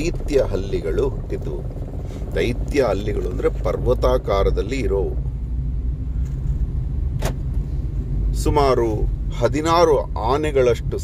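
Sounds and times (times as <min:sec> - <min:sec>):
car interior rumble: 0:00.0 - 0:11.0.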